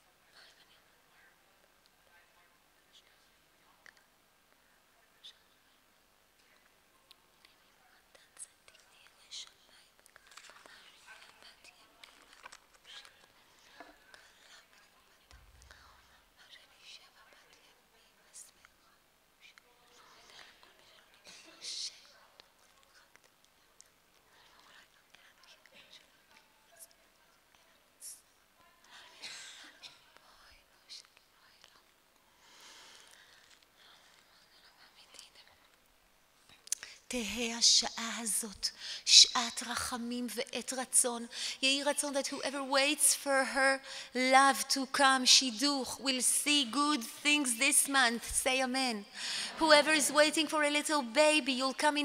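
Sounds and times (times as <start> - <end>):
person whispering: 7.3 - 29.3.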